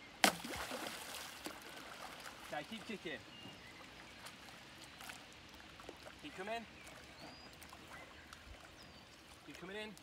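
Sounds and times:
water splashing and lapping: 0.2s - 10.0s.

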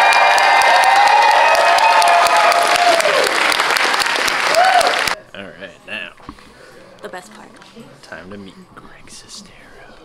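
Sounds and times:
whispering: 8.5s - 10.0s.

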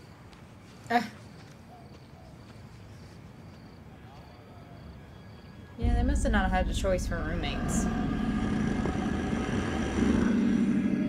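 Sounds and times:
dense drone with held tones: 5.7s - 11.0s.

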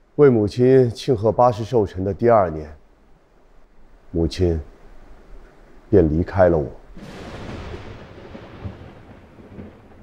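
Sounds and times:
low thunder-like rumble: 6.9s - 10.0s.

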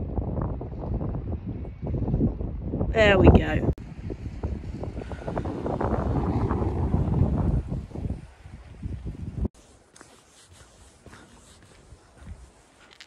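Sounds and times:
wind buffeting microphone: 0.0s - 9.6s, 11.0s - 13.0s.

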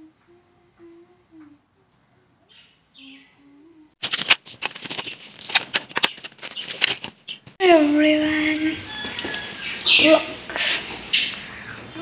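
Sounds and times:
objects clicking and rustling: 4.0s - 7.6s
person's voice: 7.6s - 8.8s.

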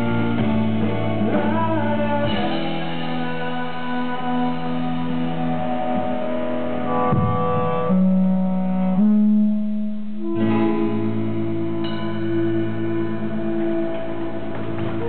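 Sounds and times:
band playing slow chords: 0.0s - 15.0s.

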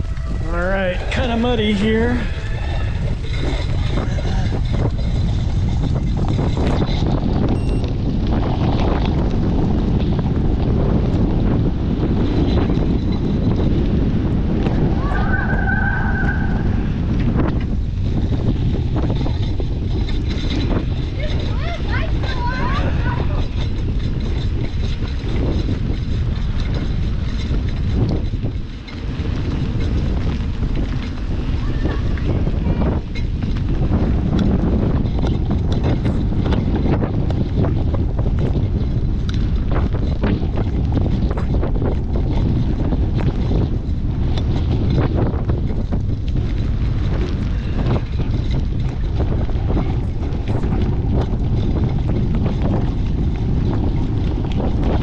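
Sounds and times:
bike tyres clicking and rattling: 0.0s - 55.0s
wind buffeting microphone: 0.0s - 55.0s.

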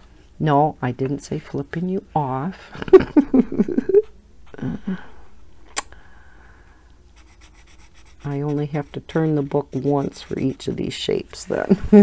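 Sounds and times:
marker scratching on paper: 7.2s - 11.0s.

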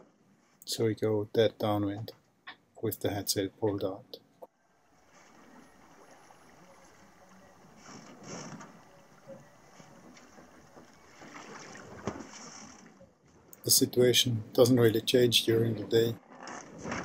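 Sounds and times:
water swishing along hull: 4.6s - 17.0s.

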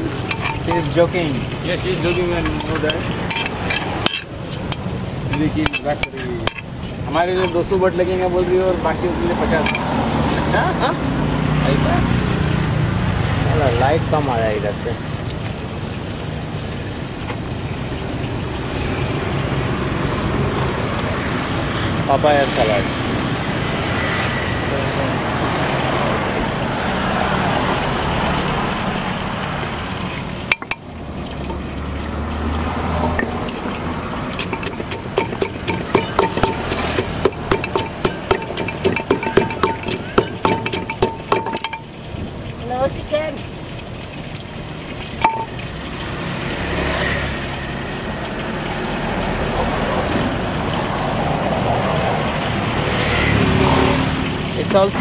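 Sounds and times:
cars and motorbikes passing: 0.0s - 55.0s.

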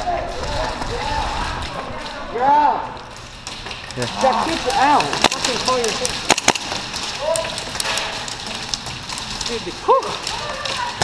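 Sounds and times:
distant shooting crackle: 3.4s - 11.0s
airsoft gun shots snapping: 6.3s - 6.8s.

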